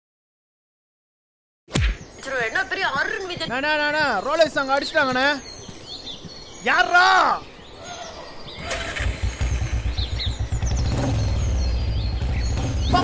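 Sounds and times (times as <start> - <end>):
birds chirping: 1.7 - 13.0
small motorcycle engine droning: 8.6 - 13.0.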